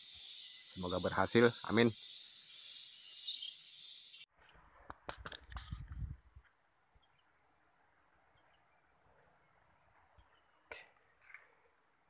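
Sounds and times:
high-pitched insect chorus: 0.0 - 4.3.

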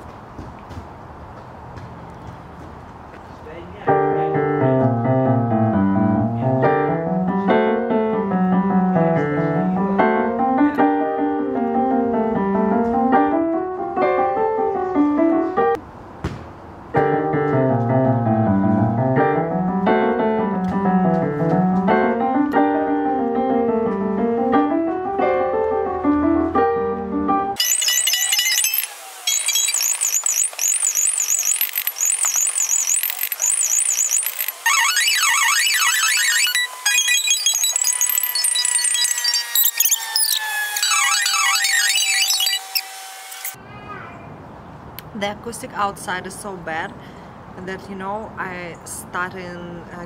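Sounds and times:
piano etude through a speaker: 3.8 - 15.8, 16.9 - 27.6
high rapid jumble of gliding notes: 27.6 - 43.6.

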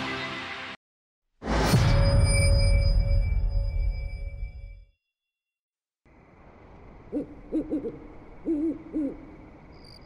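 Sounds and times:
owl hooting: 7.1 - 10.0.

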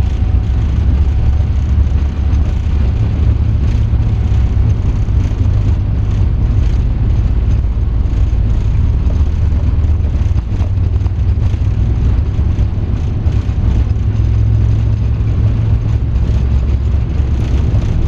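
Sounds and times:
jet engines rumbling at takeoff: 0.0 - 18.0.

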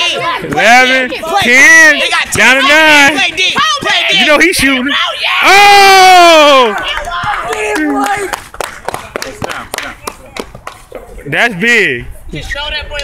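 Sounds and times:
scattered voices: 0.0 - 5.5
person yelling: 1.3 - 8.3.

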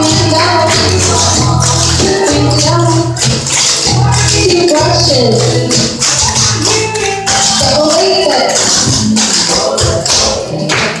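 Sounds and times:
recorded music: 0.0 - 11.0.

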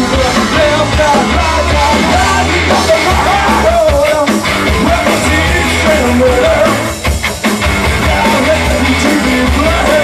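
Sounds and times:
bass guitar: 0.0 - 10.0
drum kit: 0.0 - 10.0
electric guitars: 0.0 - 10.0.

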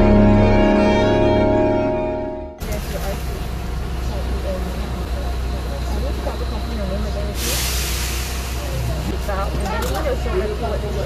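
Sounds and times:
car idling: 0.0 - 7.4.

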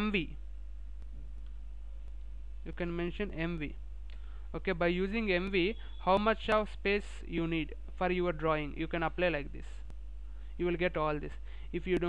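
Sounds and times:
man speaking: 0.0 - 0.4, 2.6 - 3.8, 4.5 - 9.9, 10.6 - 12.0
steady low hum: 0.0 - 12.0.

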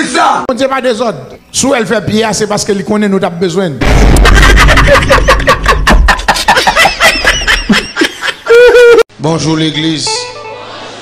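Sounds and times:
person laughing in rapid bursts: 3.8 - 9.0.

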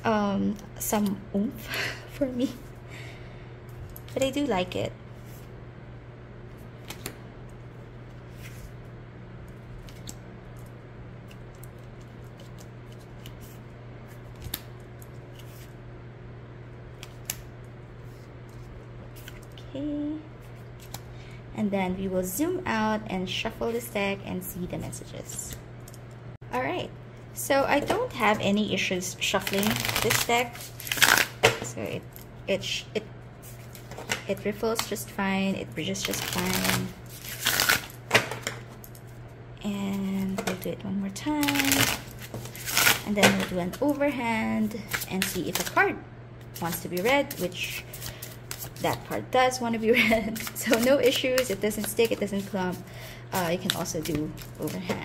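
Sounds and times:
steady low hum: 0.0 - 55.0
cards riffle shuffling: 11.3 - 15.7, 18.0 - 19.6, 29.4 - 31.5, 35.9 - 38.0, 46.5 - 49.1, 50.1 - 55.0.

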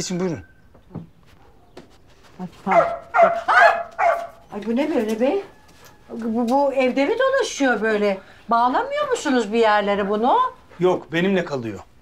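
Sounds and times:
large dog barking: 2.7 - 4.4, 9.8 - 10.6.

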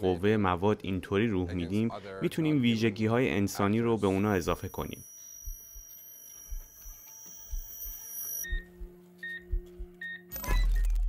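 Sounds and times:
steady high tone: 4.1 - 10.0
short high electronic beeps: 4.2 - 11.0.

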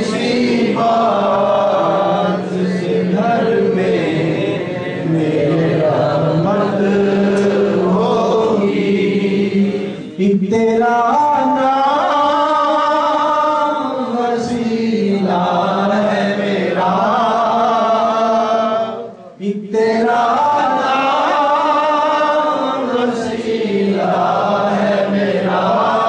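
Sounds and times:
men chanting in unison: 0.0 - 26.0.

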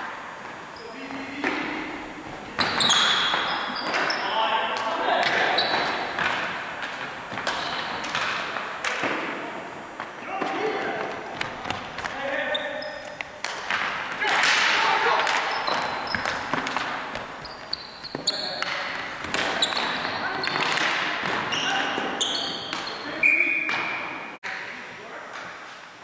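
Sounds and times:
sneakers squeaking: 0.3 - 25.7
sticks clacking ball and floor: 4.8 - 9.4, 13.0 - 23.1
players shouting: 10.1 - 24.2.

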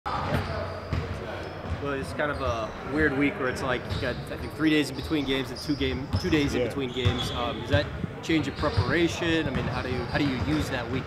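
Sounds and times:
basketballs bouncing on hardwood: 7.0 - 10.7.

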